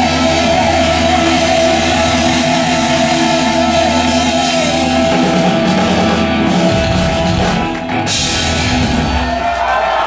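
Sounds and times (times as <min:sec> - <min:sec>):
keyboards holding long notes: 0:00.0 - 0:09.3
distorted electric guitars: 0:00.0 - 0:09.9
metal band playing live: 0:00.0 - 0:10.0.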